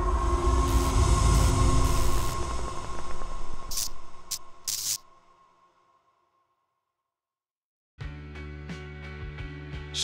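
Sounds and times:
steady droning tones: 0.0s - 4.6s
deep rumble: 0.0s - 5.4s
short bursts of hiss: 0.6s - 2.4s, 3.7s - 5.0s.

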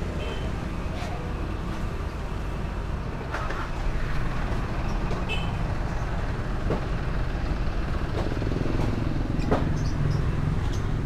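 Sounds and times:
motor vehicles rumbling: 0.0s - 11.0s.

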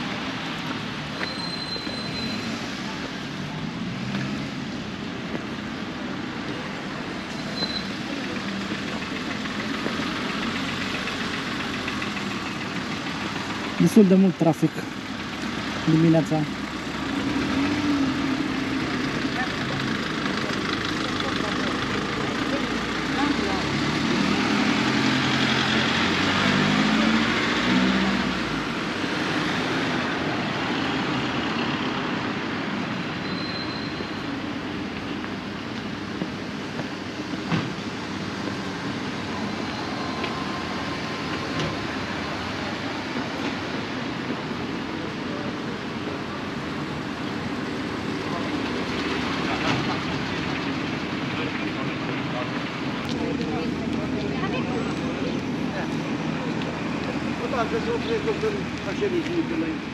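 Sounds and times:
cars passing on road: 0.0s - 59.9s
car engine accelerating: 16.5s - 30.2s.

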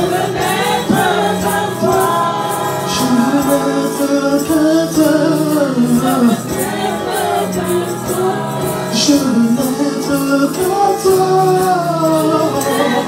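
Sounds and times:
keyboard accompaniment: 0.0s - 13.0s
women singing gospel: 0.0s - 13.0s.

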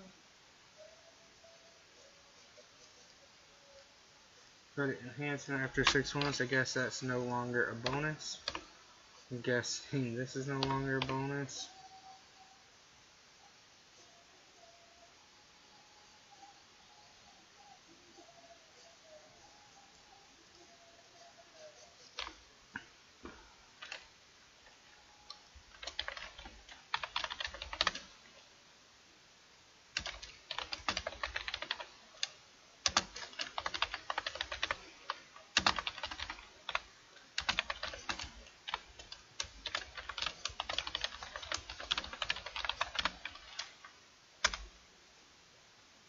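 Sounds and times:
computer keyboard typing: 5.4s - 8.7s, 10.2s - 11.6s, 22.1s - 22.4s, 23.8s - 24.1s, 25.3s - 28.2s, 30.0s - 43.8s, 44.4s - 44.7s.

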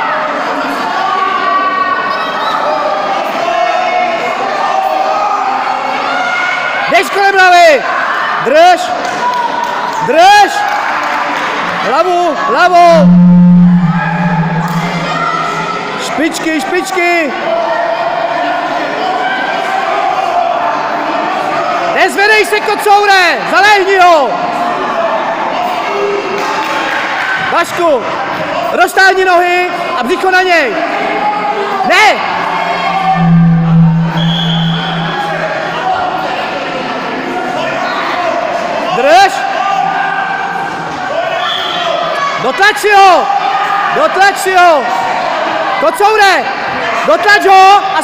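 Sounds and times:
loud low steady tone: 12.8s - 16.0s, 32.1s - 36.1s.

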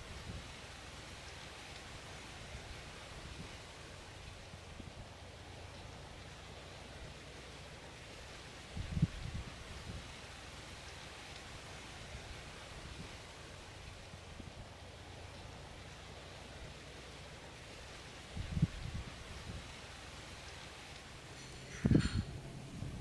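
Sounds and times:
soft breeze hiss: 0.0s - 23.0s
wind buffeting microphone: 8.8s - 10.1s, 18.3s - 19.8s, 21.2s - 23.0s.

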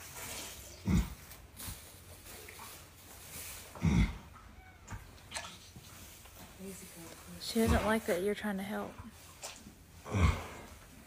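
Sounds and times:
horse groaning: 3.7s - 4.3s, 7.4s - 8.1s, 10.0s - 11.0s.

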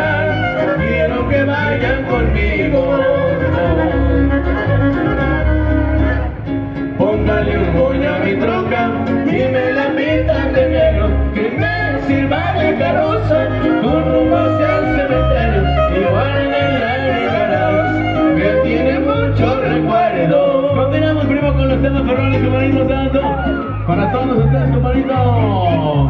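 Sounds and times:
pulsing bass: 0.0s - 26.0s
strummed guitars: 0.0s - 26.0s.

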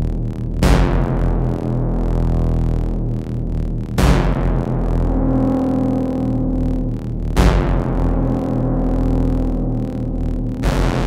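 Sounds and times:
deep synth hit: 0.0s - 11.0s
low synth drones: 0.0s - 11.0s.

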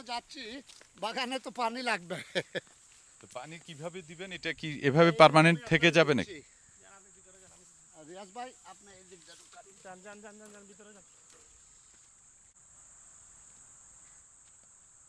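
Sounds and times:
high-pitched insect buzz: 6.3s - 15.0s.

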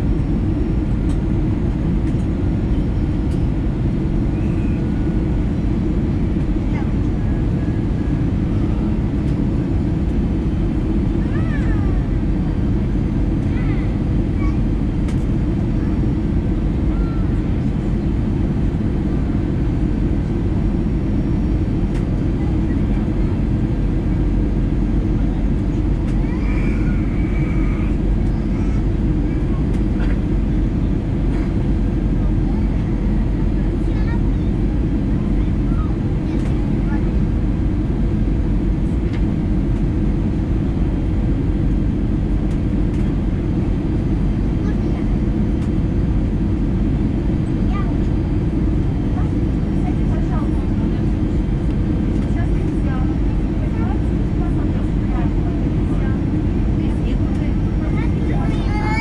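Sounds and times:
aircraft cabin rumble: 0.0s - 59.0s.

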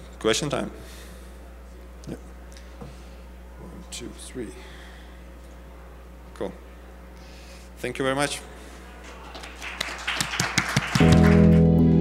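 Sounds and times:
audience applause: 9.0s - 12.0s.

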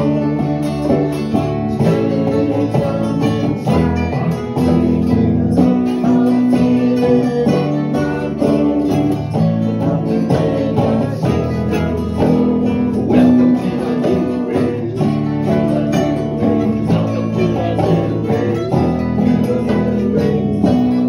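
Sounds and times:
acoustic guitar strummed and picked: 0.0s - 21.0s.

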